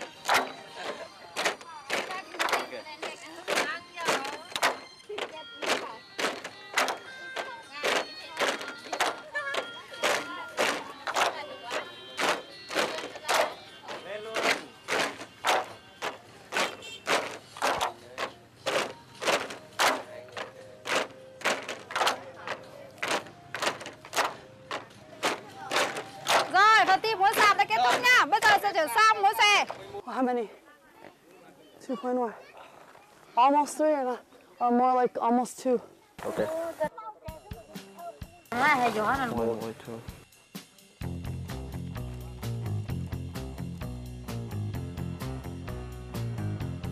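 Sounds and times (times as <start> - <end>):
bamboo poles knocking together: 0.0 - 28.7.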